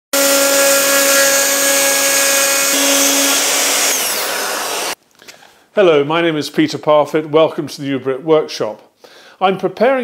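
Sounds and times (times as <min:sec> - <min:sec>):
router cutting wood: 0:00.1 - 0:05.0.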